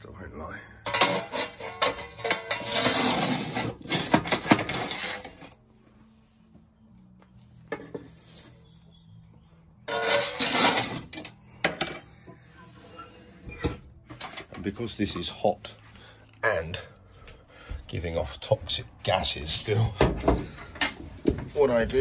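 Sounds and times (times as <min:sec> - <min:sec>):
ash scraped from metal pan: 0:09.9 - 0:11.1.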